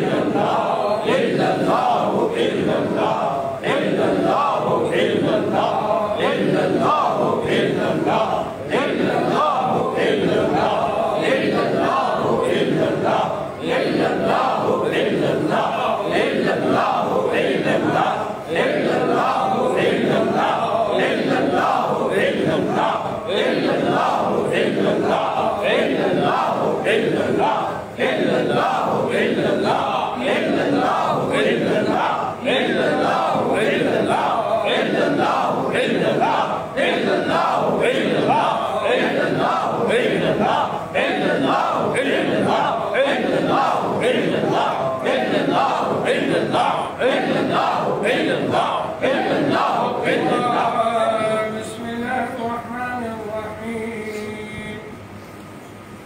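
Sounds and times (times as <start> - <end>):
men chanting in unison: 0.0 - 54.9.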